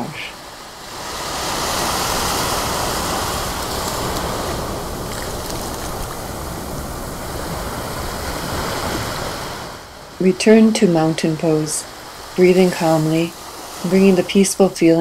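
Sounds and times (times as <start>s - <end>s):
ocean surf breaking on beach: 0.0s - 15.0s.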